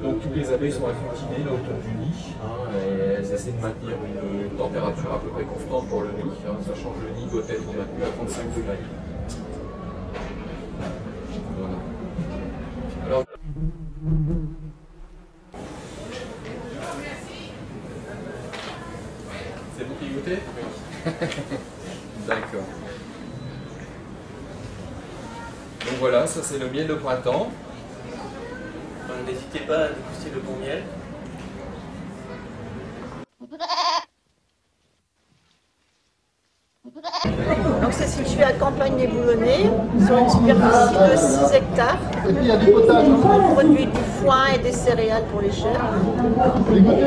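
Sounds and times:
crowd murmuring in hall: 0.0 - 33.8, 37.0 - 47.0
goats bleating: 33.4 - 34.1, 36.9 - 37.4.

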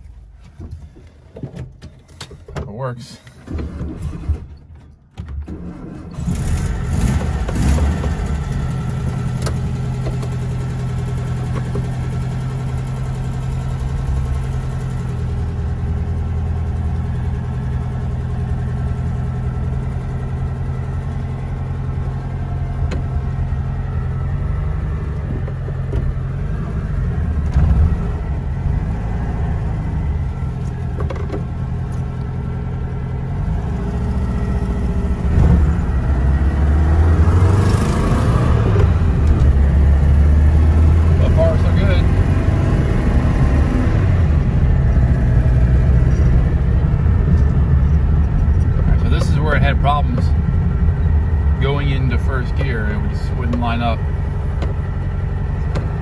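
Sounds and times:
car engine running while driving: 0.0 - 56.0.

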